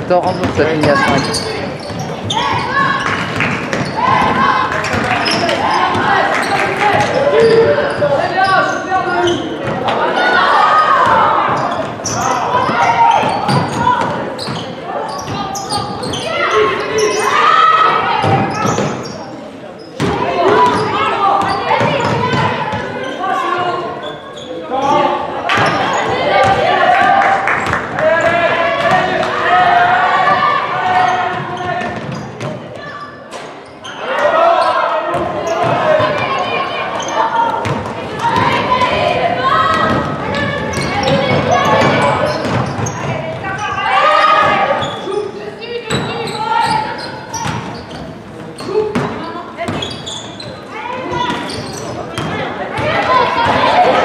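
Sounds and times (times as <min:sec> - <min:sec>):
voices calling out: 0:00.0 - 0:54.0.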